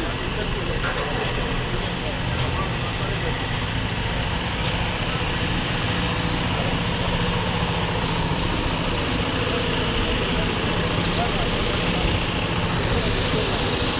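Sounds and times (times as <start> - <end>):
diesel engine idling: 0.0 - 13.9.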